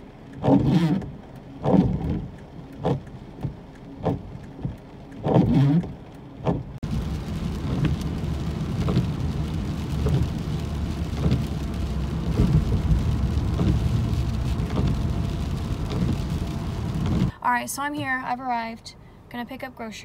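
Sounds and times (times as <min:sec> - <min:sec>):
rain falling on wet street: 0:00.0 - 0:17.3
car driving on wet road: 0:00.0 - 0:18.3.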